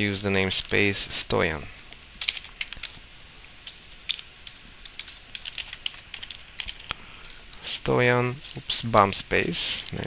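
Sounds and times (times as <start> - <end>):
typing on computer keyboard: 2.2 - 3.0, 3.6 - 6.9.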